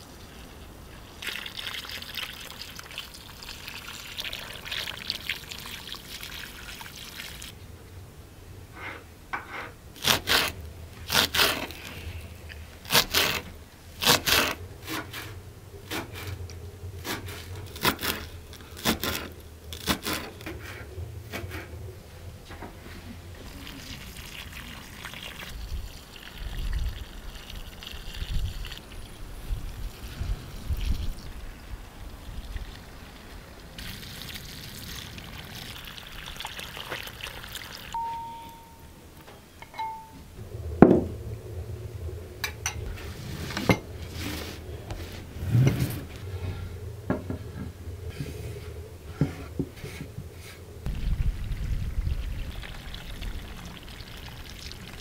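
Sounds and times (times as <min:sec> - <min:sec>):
water running from hose: 0:00.0 - 0:07.5, 0:23.4 - 0:38.0, 0:50.9 - 0:55.0.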